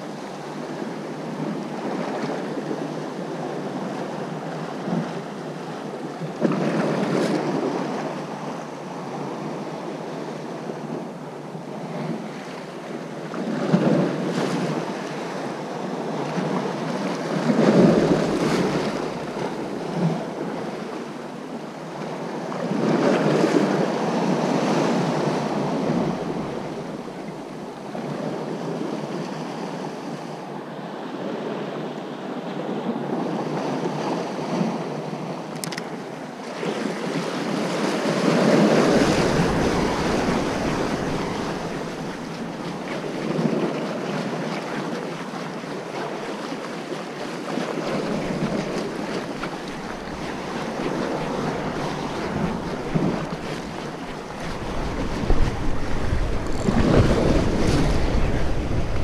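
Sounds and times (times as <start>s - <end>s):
waves washing against shore: 0.0s - 59.0s
wind buffeting microphone: 22.7s - 29.1s, 37.1s - 45.1s, 47.2s - 59.0s.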